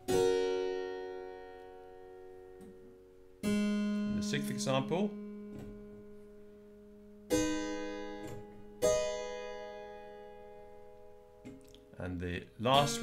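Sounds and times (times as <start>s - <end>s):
keyboard chords: 0.0s - 13.0s.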